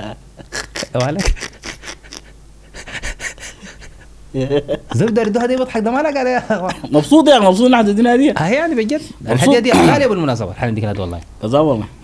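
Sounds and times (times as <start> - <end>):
breathy laughter: 0.4 - 5.1.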